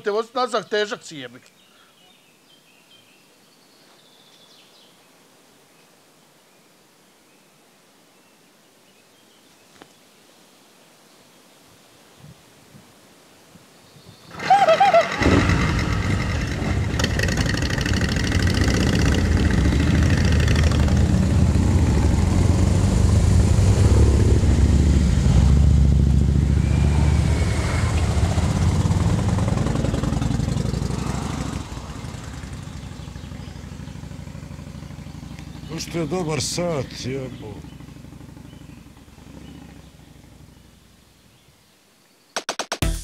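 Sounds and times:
motorcycle engines starting and running: 0:14.3 - 0:41.0.

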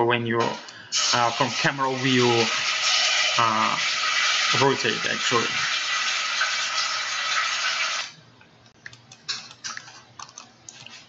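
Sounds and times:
loud steady hiss: 0:00.5 - 0:05.9.

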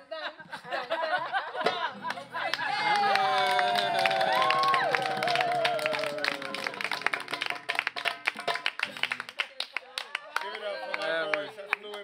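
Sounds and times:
group clapping and applauding: 0:02.1 - 0:12.0
hand drums playing: 0:06.4 - 0:09.1.

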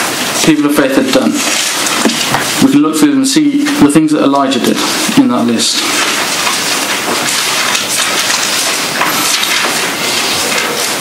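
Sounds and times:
pages rustling: 0:00.0 - 0:02.8, 0:04.4 - 0:11.0.

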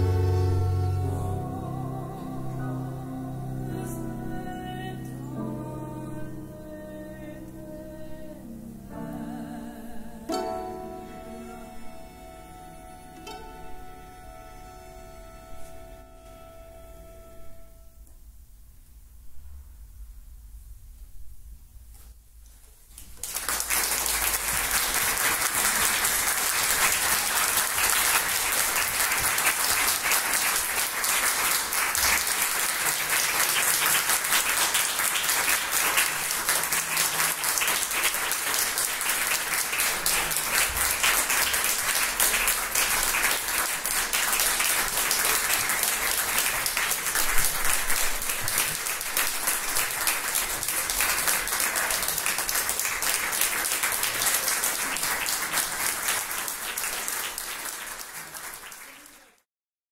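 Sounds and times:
audience applauding: 0:23.0 - 0:59.4.

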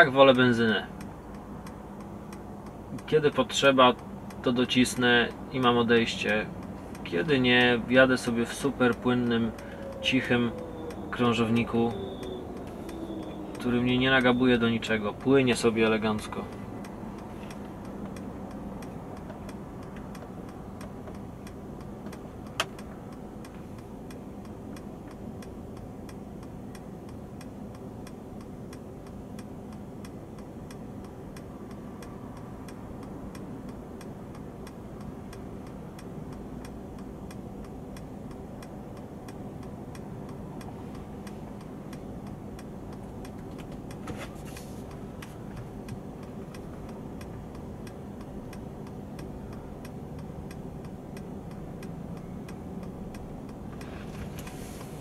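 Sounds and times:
low steady hum: 0:00.0 - 0:55.0
steady ticking: 0:00.3 - 0:44.0, 0:44.8 - 0:55.0.

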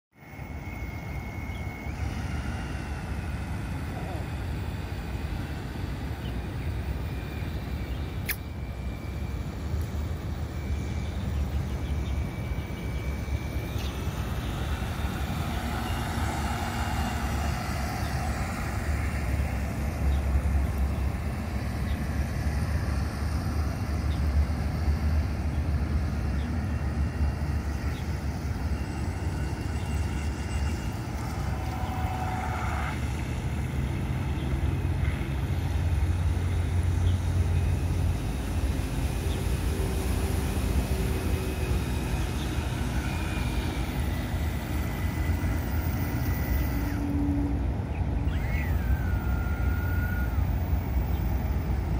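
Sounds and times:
model boat motor whine: 0:00.2 - 0:51.9
steady low rumble: 0:00.3 - 0:48.2.

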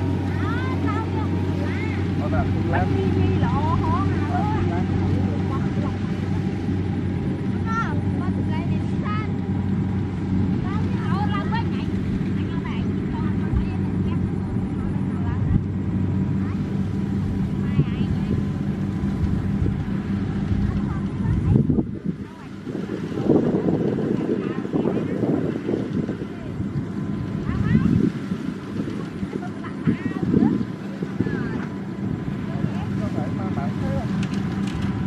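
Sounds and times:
diesel engine droning: 0:00.0 - 0:35.0.

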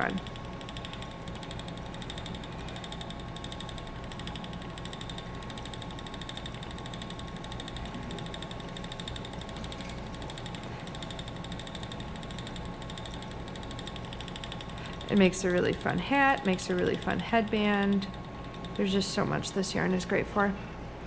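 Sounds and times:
spinning wheel whirring: 0:00.0 - 0:20.3.

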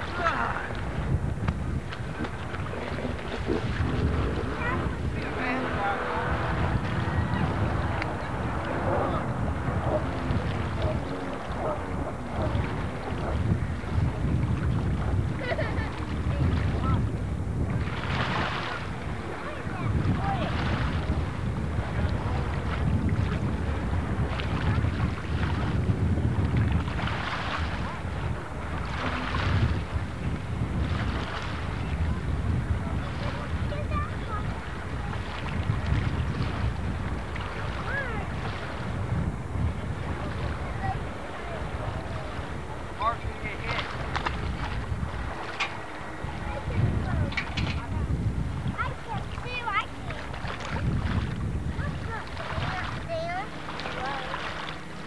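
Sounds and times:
distant jet ski engine: 0:00.0 - 0:55.0
wind buffeting microphone: 0:00.0 - 0:55.0.

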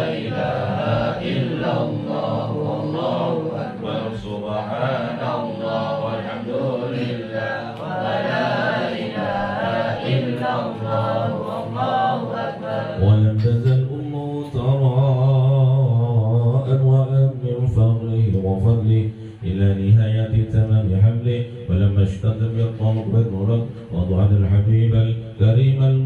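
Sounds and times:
men chanting: 0:00.0 - 0:26.0.

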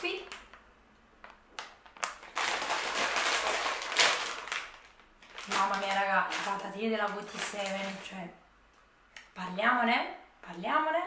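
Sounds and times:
plastic snack bag crinkling: 0:00.0 - 0:08.2.

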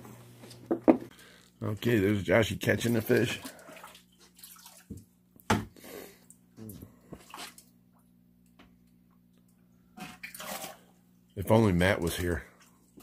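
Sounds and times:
low steady hum: 0:00.0 - 0:13.0
water splashing: 0:02.7 - 0:05.0, 0:07.2 - 0:07.7
water dripping: 0:02.8 - 0:05.5.

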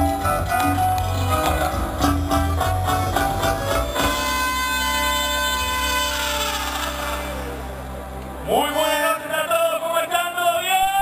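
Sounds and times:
amplified band music: 0:00.0 - 0:10.8.

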